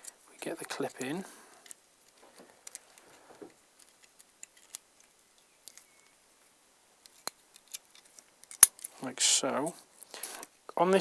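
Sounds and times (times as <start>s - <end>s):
small metal clicks and scrapes: 0.0s - 6.2s, 7.0s - 9.0s.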